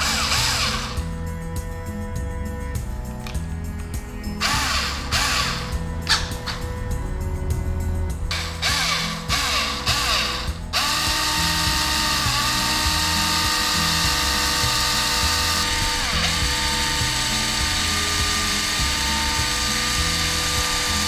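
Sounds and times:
cordless drill motor whining: 0:00.0 - 0:01.4, 0:03.3 - 0:21.0.

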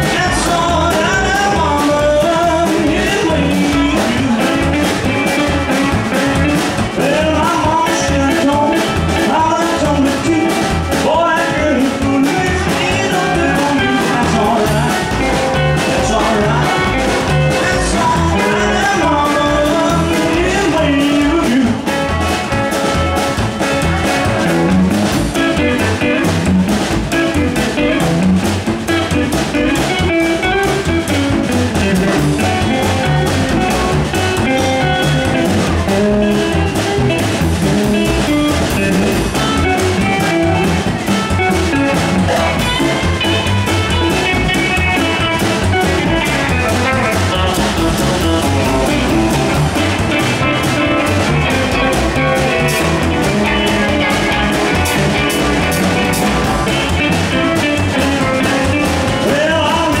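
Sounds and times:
live rockabilly band playing: 0:00.0 - 1:00.0.

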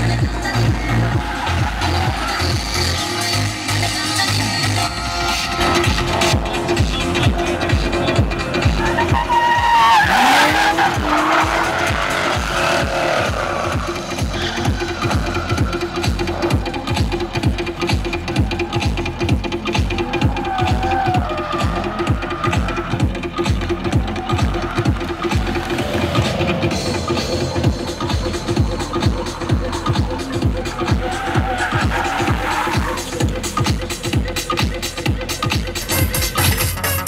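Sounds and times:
dance music with steady beat: 0:00.0 - 0:37.0
car engine revving hard: 0:05.6 - 0:17.9, 0:19.0 - 0:34.1
tyres squealing: 0:05.7 - 0:19.1, 0:19.7 - 0:33.6.

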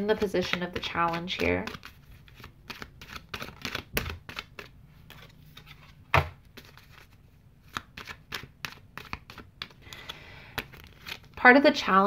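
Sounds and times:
cards shuffling: 0:00.0 - 0:11.4.

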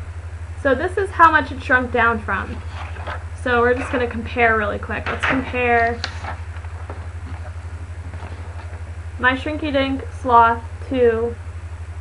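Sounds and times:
pulsing low hum: 0:00.0 - 0:12.0.

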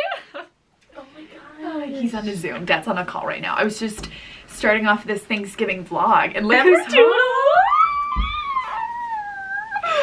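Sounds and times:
woman squealing: 0:07.0 - 0:10.0.

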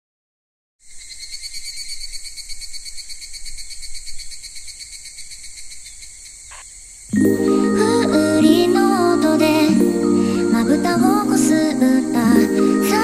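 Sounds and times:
insects chirring: 0:00.8 - 0:07.2.

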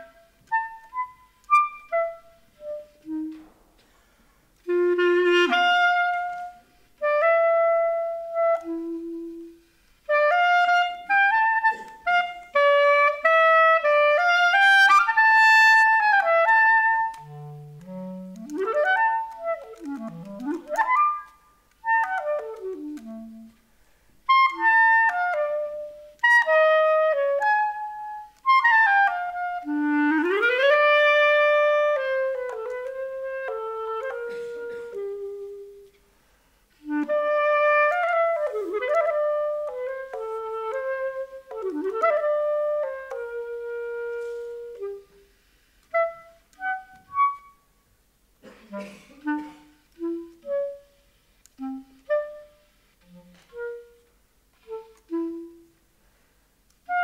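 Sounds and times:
solo clarinet: 0:00.0 - 0:36.0, 0:36.7 - 0:57.0.

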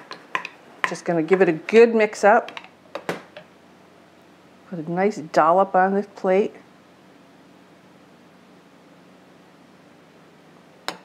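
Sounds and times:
room hiss with faint hum: 0:00.0 - 0:11.0.

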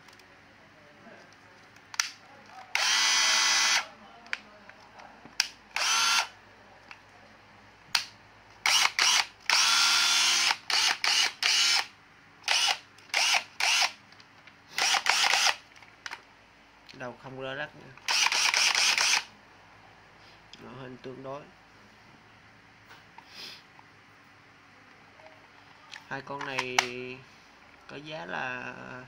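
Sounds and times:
cordless drill motor bursts: 0:02.8 - 0:03.8, 0:05.8 - 0:06.3, 0:08.6 - 0:11.9, 0:12.5 - 0:14.0, 0:14.8 - 0:15.6, 0:18.1 - 0:19.3.

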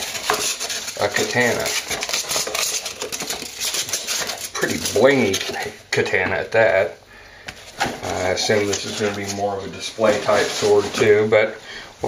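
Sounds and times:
cardboard and foam rustling: 0:00.0 - 0:06.9, 0:07.5 - 0:11.6.

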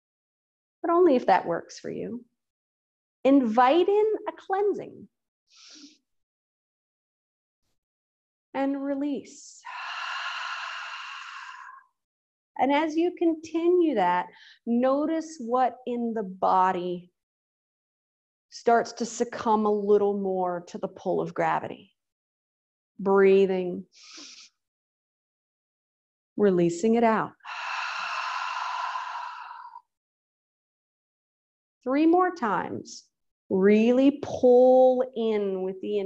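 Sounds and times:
woman exhaling a breathy sigh: 0:09.6 - 0:11.8, 0:27.4 - 0:29.9.

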